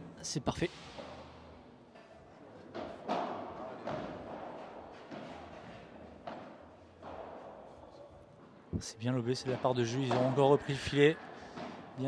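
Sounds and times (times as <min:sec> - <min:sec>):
balls knocking in echoing hall: 0:00.8 - 0:12.0.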